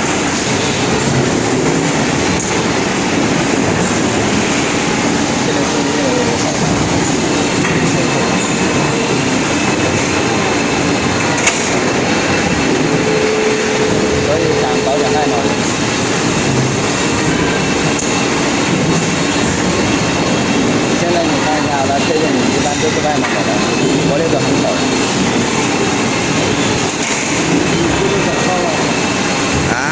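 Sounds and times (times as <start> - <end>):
conveyor belt running: 0.0 - 29.9
injection moulding machine running: 0.0 - 29.9.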